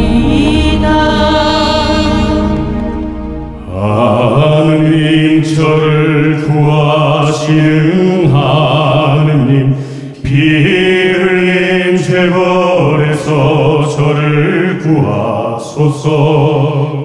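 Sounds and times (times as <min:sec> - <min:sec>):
man chanting: 0:03.6 - 0:17.0.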